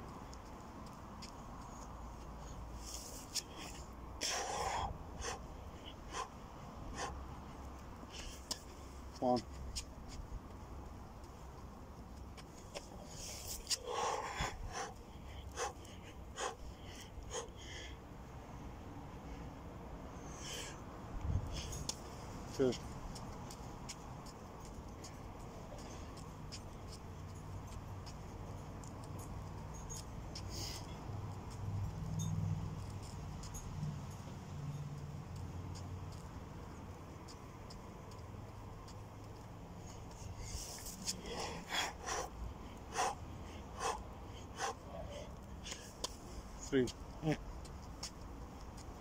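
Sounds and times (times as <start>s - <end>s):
sharp exhalations: 2.9s - 7.2s, 13.0s - 18.0s, 40.4s - 46.0s
man breathing hard: 3.4s - 7.3s, 13.0s - 18.1s, 40.3s - 46.0s.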